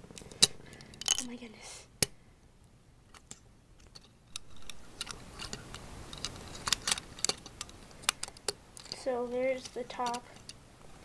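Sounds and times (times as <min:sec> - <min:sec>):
plastic pieces clicking together: 0:03.1 - 0:10.6.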